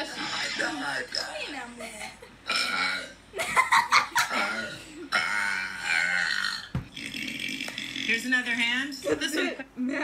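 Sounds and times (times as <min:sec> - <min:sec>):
long burp: 0:02.5 - 0:03.2, 0:04.3 - 0:08.1.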